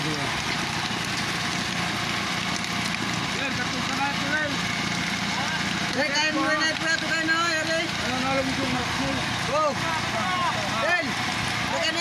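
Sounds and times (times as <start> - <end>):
boat engine running: 0.0 - 12.0
voices talking: 3.2 - 12.0.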